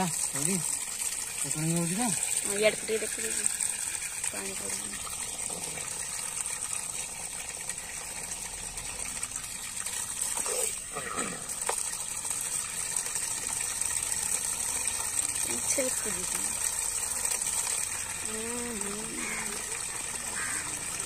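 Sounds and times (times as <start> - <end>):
pump motor whine: 0.0 - 21.0
water gushing and splashing: 0.0 - 21.0.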